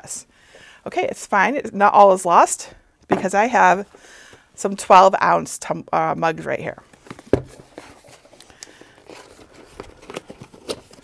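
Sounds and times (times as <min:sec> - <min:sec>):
cardboard packaging rustling: 0:06.9 - 0:11.0.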